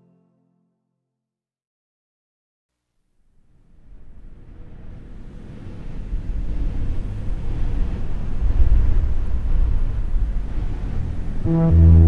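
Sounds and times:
low rushing outdoor rumble: 3.8s - 12.0s.

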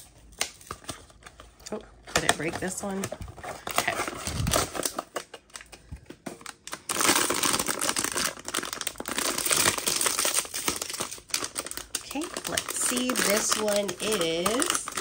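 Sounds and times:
foil bag crinkling: 0.0s - 15.0s.

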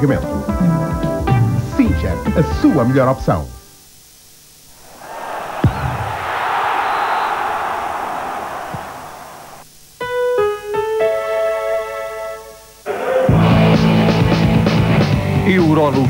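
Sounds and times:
low thud: 5.6s - 6.2s.

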